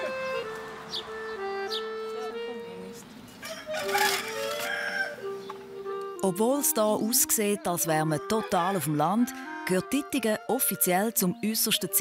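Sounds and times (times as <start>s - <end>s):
soft background music: 0.0s - 12.0s
rooster crowing: 3.4s - 5.3s.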